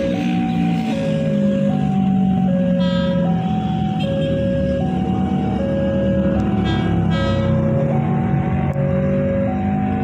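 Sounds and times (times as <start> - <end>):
two-tone crossing alarm: 0.0 - 10.0
horn: 6.6 - 7.6.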